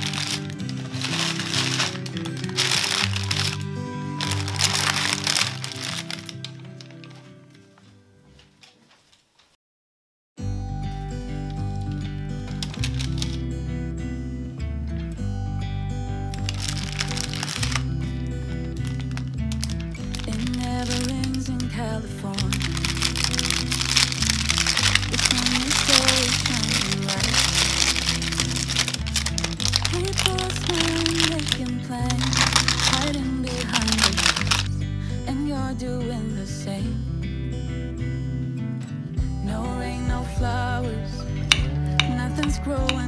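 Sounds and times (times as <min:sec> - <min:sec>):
baking paper crinkling: 0:00.0 - 0:09.6, 0:11.5 - 0:13.5, 0:16.4 - 0:34.7
pop song with singing: 0:20.2 - 0:23.7, 0:24.9 - 0:28.2, 0:29.8 - 0:37.3, 0:39.2 - 0:43.0.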